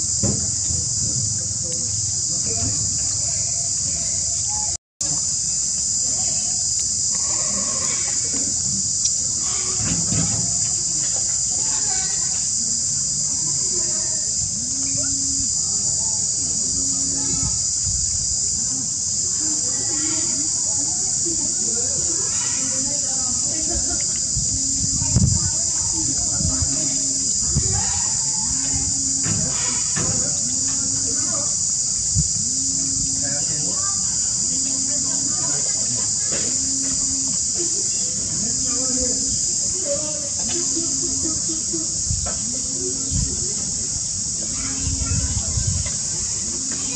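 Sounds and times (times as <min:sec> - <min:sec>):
insects droning: 0:00.0 - 0:46.9.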